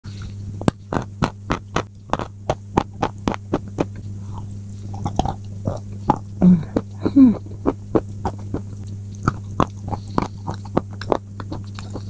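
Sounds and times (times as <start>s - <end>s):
crunchy chewing: 0.1s - 12.0s
low electrical hum: 0.1s - 12.0s.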